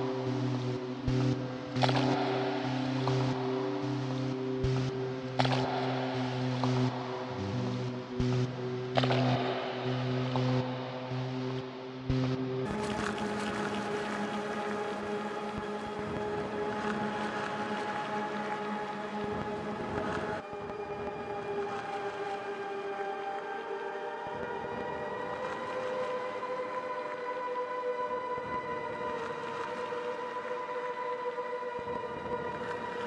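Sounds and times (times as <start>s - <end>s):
electronic synthesizer drone: 0.0s - 21.2s.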